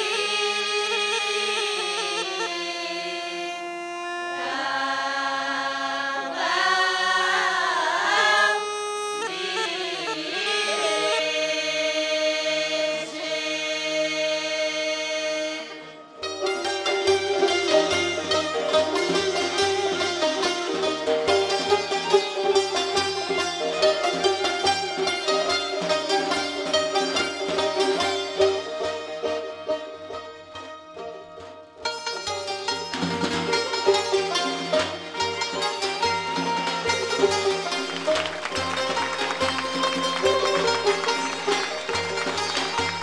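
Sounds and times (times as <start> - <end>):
folk singing with held notes: 0.0 - 16.1
plucked lutes strummed rapidly: 32.1 - 43.0.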